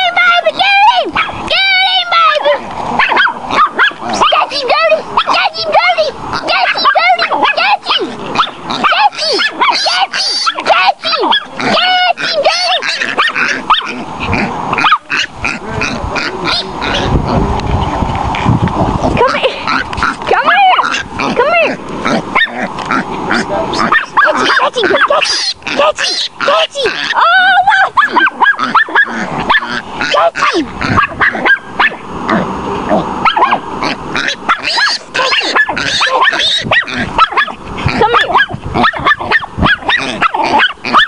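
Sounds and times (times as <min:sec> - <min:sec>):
small dog yapping and baying: 0:01.0 - 0:01.5, 0:02.1 - 0:14.0, 0:14.7 - 0:15.3, 0:20.3 - 0:22.7, 0:23.8 - 0:32.0, 0:33.2 - 0:41.0.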